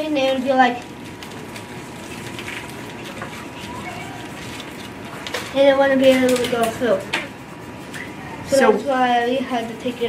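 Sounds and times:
steady room hum: 0.0 - 10.0
distant children's voices: 2.9 - 10.0.

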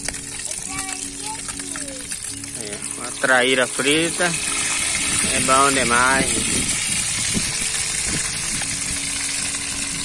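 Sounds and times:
fish sizzling in hot oil: 0.0 - 10.0.

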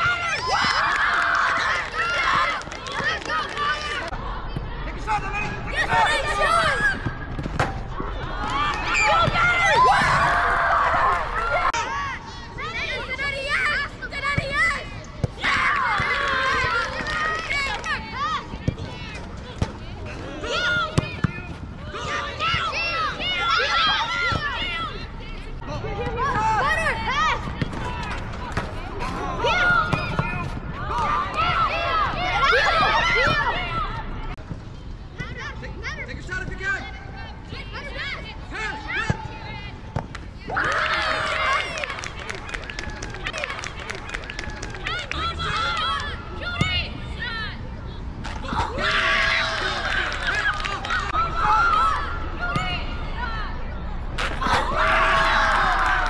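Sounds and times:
excited crowd shouts: 54.4 - 56.0.

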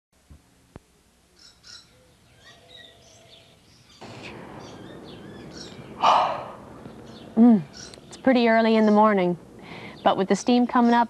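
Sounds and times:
steady background hiss: 0.2 - 11.0
birds chirping: 1.3 - 11.0.

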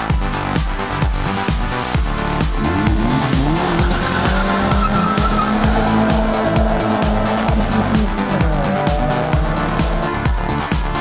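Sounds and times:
electronic dance music: 0.0 - 11.0
car engine revving: 1.6 - 11.0.

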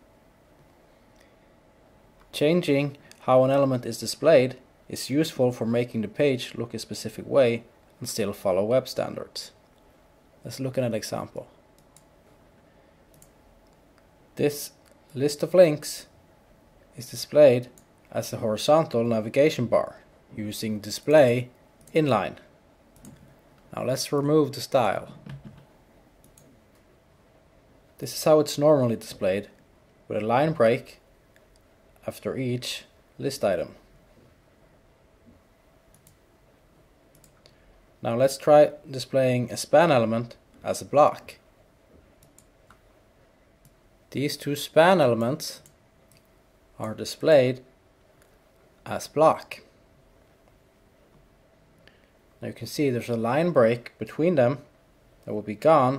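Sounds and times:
computer mouse clicks: 13.1 - 14.1, 23.0 - 23.3, 26.2 - 26.8, 35.9 - 36.2, 37.1 - 37.6, 42.2 - 42.8.

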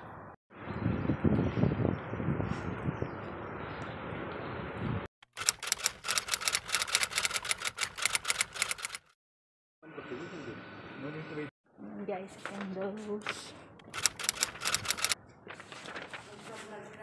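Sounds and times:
fast run of sharp clicks: 5.2 - 9.2, 13.8 - 15.2.

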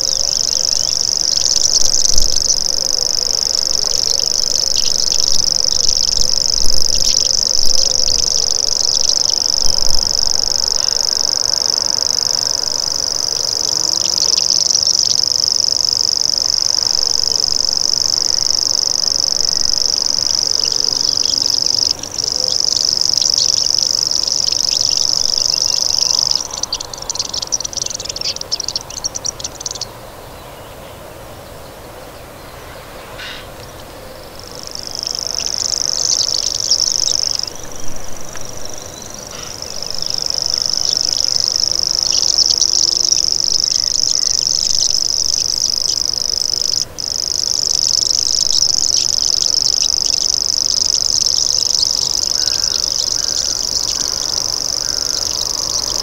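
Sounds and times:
grasshopper warbler reeling trill: 0.0 - 30.3, 32.4 - 56.0.

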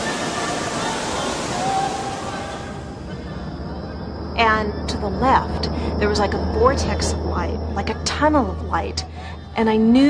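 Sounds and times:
waterfall rushing: 0.0 - 3.0.

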